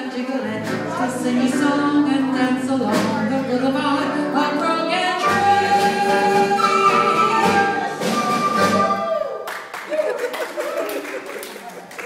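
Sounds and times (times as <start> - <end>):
live band with flute: 5.2 - 9.4.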